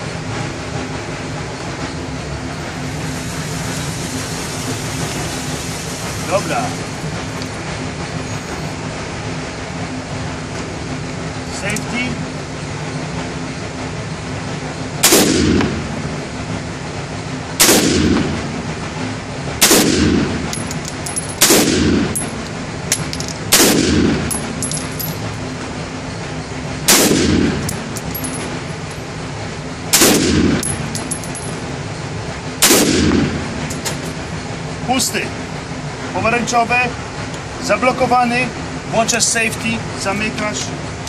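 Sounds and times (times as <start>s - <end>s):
background hum: 14.7s - 35.8s
rifle shots: 15.0s - 15.7s, 17.6s - 18.3s, 19.6s - 20.4s, 21.4s - 22.1s, 23.5s - 24.3s, 26.9s - 27.7s, 29.9s - 30.9s, 32.6s - 33.4s.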